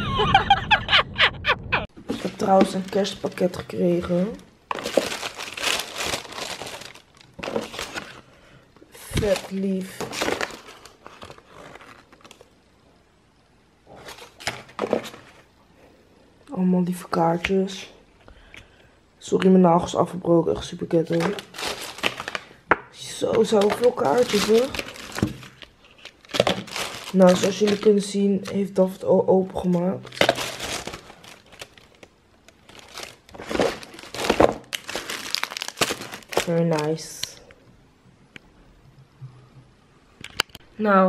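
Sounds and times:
tissue paper rustling: 2.0 - 8.3, 21.0 - 22.5, 23.4 - 28.3, 29.6 - 32.0, 32.6 - 37.0.

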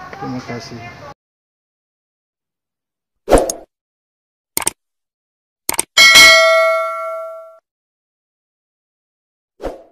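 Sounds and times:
quick double click: 4.6 - 4.8, 5.7 - 5.9
bell ding ringing: 6.0 - 7.6.

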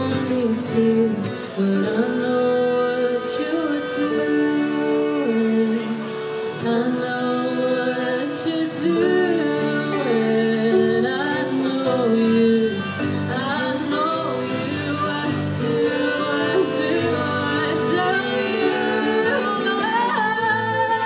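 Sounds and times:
folk band playing: 0.0 - 21.0
woman singing: 0.0 - 21.0.

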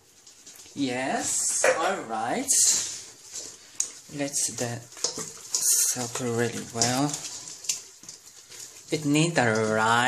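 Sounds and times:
hands squishing wet marinade into meat: 2.7 - 10.0.

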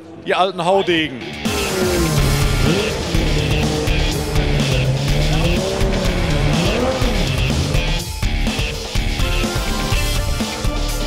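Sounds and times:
rock music: 0.0 - 11.0
car engine revving: 1.2 - 10.1.

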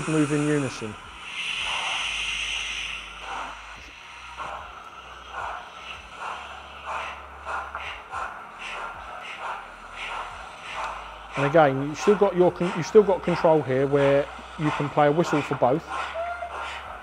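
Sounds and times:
steam hiss: 0.0 - 17.0
steam locomotive exhaust chuffs: 0.0 - 17.0.

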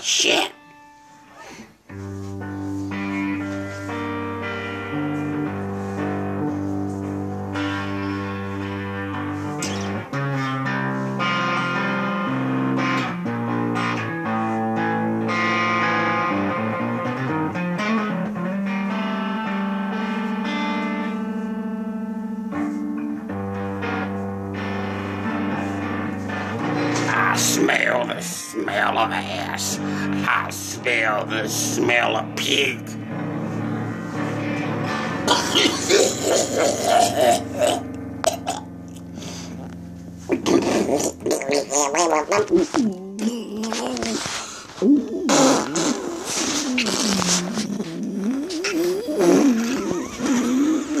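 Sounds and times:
electric guitar sustained notes: 0.0 - 51.0
man making wavering vocal noises: 27.0 - 33.0, 35.2 - 38.7, 40.3 - 51.0
breathy raspy vocal burst: 34.8 - 39.7, 43.1 - 51.0.

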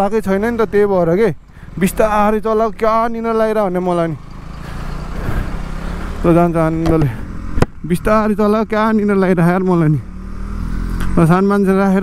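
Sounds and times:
motorcycle engine at low speed: 0.0 - 12.0
road and wind noise: 0.0 - 12.0.

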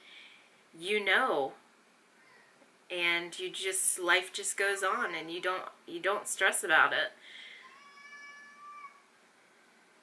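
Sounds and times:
cat meowing: 7.6 - 9.0.

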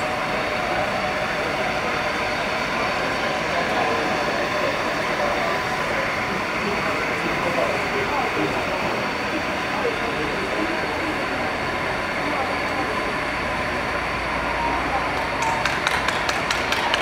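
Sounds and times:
murmur of voices: 0.0 - 17.0
rhythmic hand clapping: 15.1 - 17.0.

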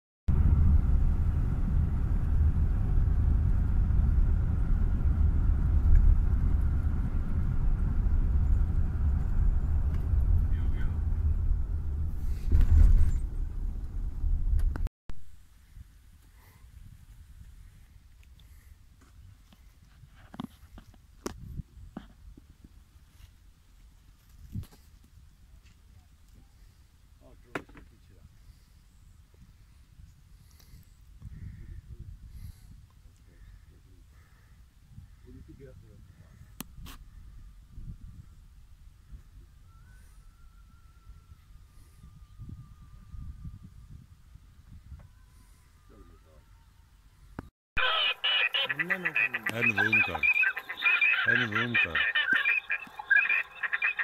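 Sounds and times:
car engine and road noise: 0.3 - 14.9
wind rumble on microphone: 0.3 - 14.9, 15.5 - 23.0, 24.1 - 26.8, 27.9 - 47.5.

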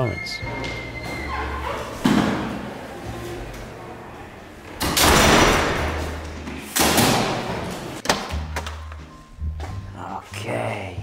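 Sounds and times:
heavy door thudding shut: 4.8 - 6.2.

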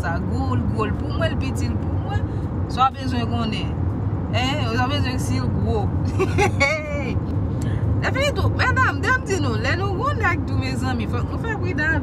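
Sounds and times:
woman speaking: 0.0 - 3.7, 8.0 - 12.0
car road and engine noise: 0.0 - 12.0.

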